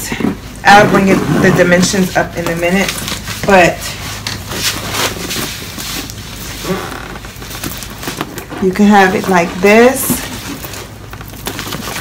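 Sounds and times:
plastic wrapping crinkling: 0.3s - 12.0s.

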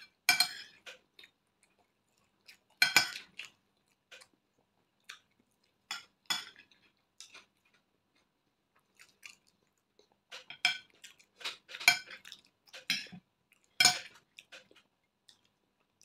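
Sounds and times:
person chewing food: 0.0s - 16.0s.

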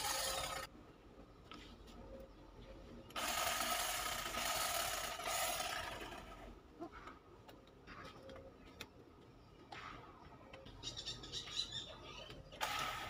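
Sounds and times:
electric hedge trimmer buzzing: 0.0s - 0.7s, 3.2s - 6.5s.

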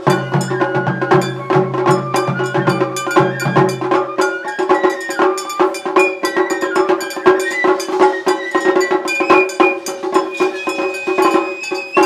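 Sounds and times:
drum beats: 0.0s - 12.0s.

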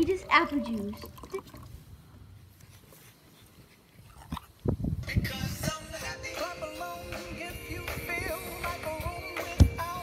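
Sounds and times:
person gulping a drink: 0.3s - 1.8s, 4.0s - 4.8s.

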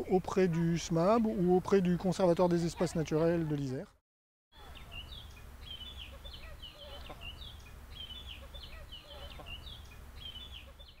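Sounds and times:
birds chirping: 4.5s - 11.0s.

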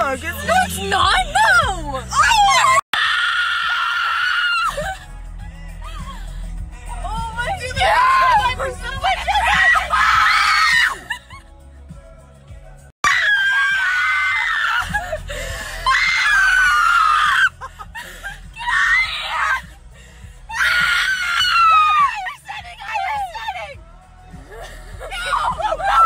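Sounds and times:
car rumble: 0.0s - 2.9s, 4.6s - 12.9s, 14.3s - 26.0s
woman screaming: 1.2s - 5.0s, 7.4s - 11.2s, 13.0s - 15.2s, 15.8s - 17.6s, 18.5s - 19.7s, 20.5s - 23.7s, 25.0s - 26.0s.

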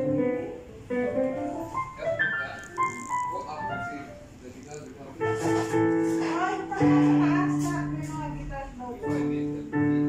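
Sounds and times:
piano melody: 0.0s - 10.0s.

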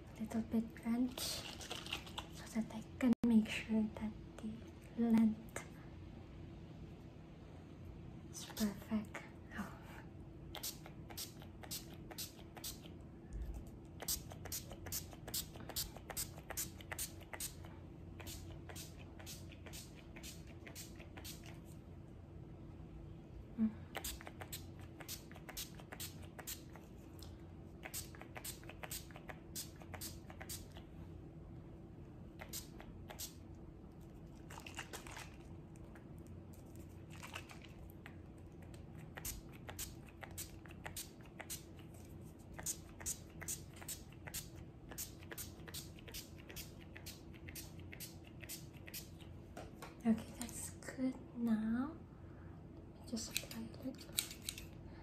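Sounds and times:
faint steady hum: 0.0s - 55.0s
hair crackling when scrunched: 14.0s - 21.8s, 23.9s - 30.8s, 36.5s - 49.3s.

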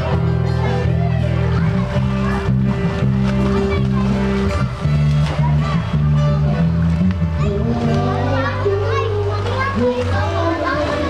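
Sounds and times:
background music with bass notes: 0.0s - 11.0s
children calling and shouting: 0.0s - 11.0s.

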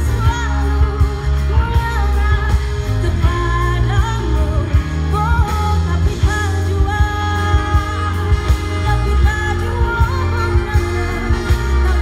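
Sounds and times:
bass guitar: 0.0s - 12.0s
keyboards: 0.0s - 12.0s
saxophone and trumpet melody: 6.2s - 12.0s.

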